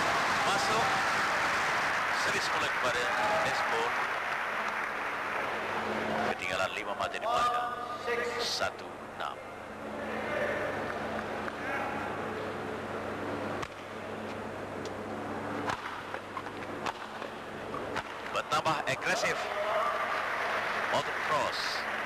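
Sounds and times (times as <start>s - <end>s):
rackets striking shuttlecock: 15.6s - 18.3s.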